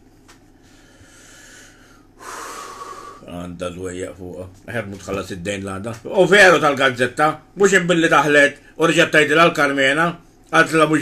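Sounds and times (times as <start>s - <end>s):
man breathing in loudly: 0.6s - 3.3s
man speaking: 3.2s - 11.0s.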